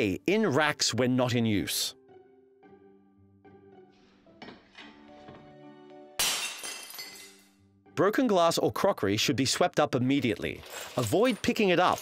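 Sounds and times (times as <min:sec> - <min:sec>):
light background music: 0:00.0 - 0:12.0
ceramic plate smashing on floor: 0:06.2 - 0:07.5.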